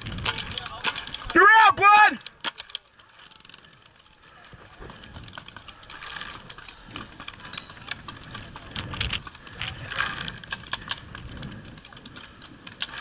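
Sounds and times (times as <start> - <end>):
wind buffeting microphone: 0.0 - 1.3, 4.4 - 13.0
light clicks and ticks: 0.0 - 13.0.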